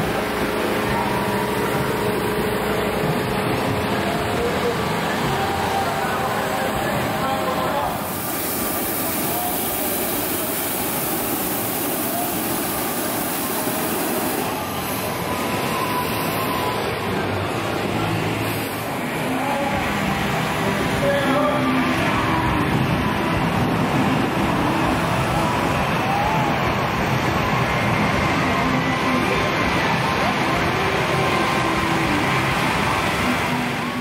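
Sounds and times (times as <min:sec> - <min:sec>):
crowd chatter: 0:00.0 - 0:34.0
propane burner roaring: 0:00.0 - 0:34.0.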